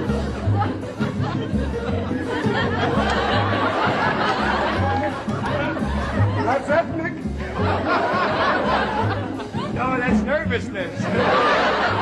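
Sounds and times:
calypso band playing: 0.0s - 12.0s.

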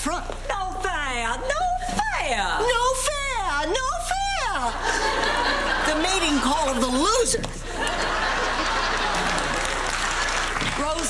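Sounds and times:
audience laughing and applauding: 4.8s - 6.8s, 7.7s - 11.0s.

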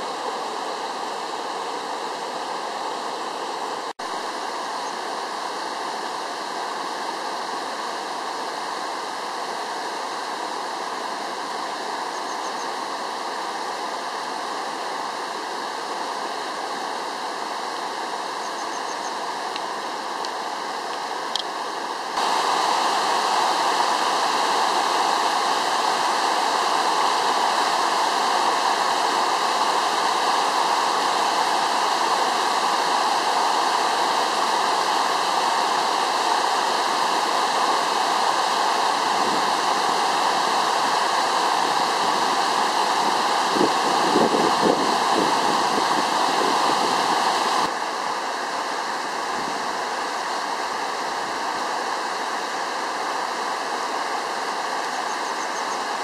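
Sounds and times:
flowing river water: 0.0s - 56.0s.

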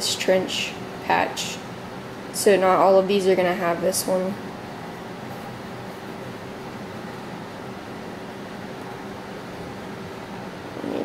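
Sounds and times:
faint constant hum: 0.0s - 11.0s.

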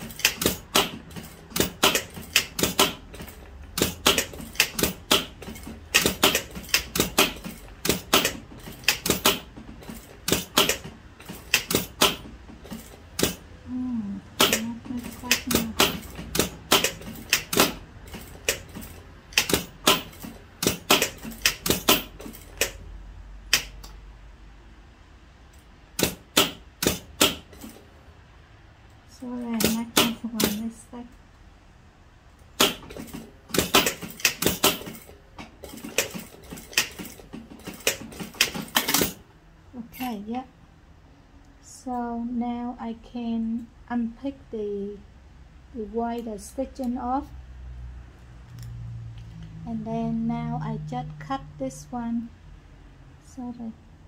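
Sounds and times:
sewing machine clicking: 0.0s - 13.5s, 14.4s - 22.8s, 29.5s - 30.6s, 32.6s - 39.2s.

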